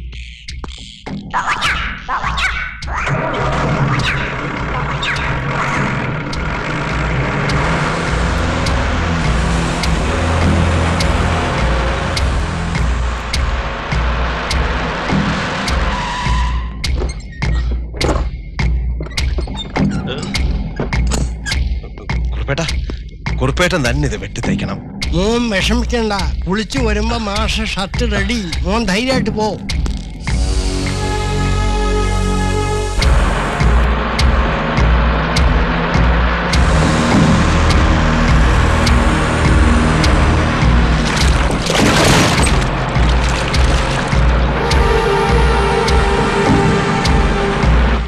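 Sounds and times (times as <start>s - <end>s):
film score with heavy percussion hits: 0.0s - 48.0s
deep pulsing bass: 2.8s - 48.0s
deep booming pulses: 29.7s - 48.0s.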